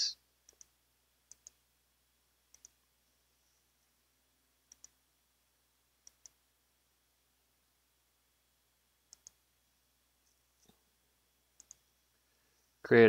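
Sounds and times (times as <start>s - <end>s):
mouse button clicking: 9.1s - 9.4s.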